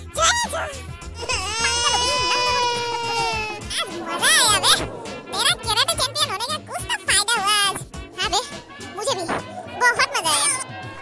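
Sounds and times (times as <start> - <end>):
background music: 0.0 - 11.0
high crying wail: 1.2 - 6.3.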